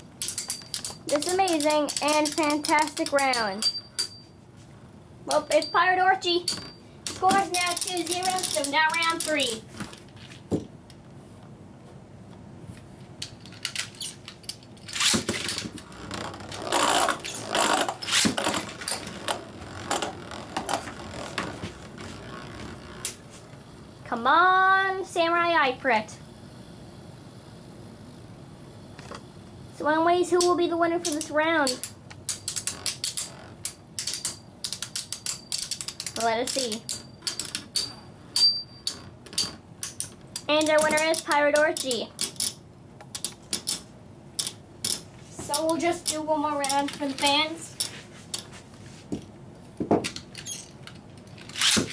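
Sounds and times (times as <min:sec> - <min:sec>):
spinning tops clicking and rattling: 0:00.0 - 0:04.2, 0:05.3 - 0:09.6, 0:30.3 - 0:48.6
high ring: 0:03.5 - 0:04.4, 0:05.3 - 0:07.0, 0:36.8 - 0:39.1.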